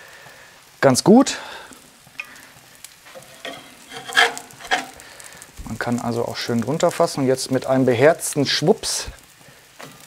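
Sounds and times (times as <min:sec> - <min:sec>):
faint sizzle: 0:00.0 - 0:10.0
metal spatula scraping hot plate: 0:03.1 - 0:05.2.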